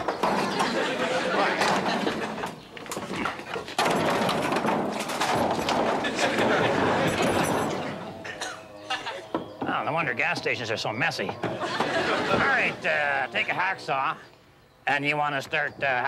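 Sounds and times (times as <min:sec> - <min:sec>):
exhaust pipe clanking and scraping: 0:00.0 - 0:08.6
sharp metal knocks: 0:03.7 - 0:08.6.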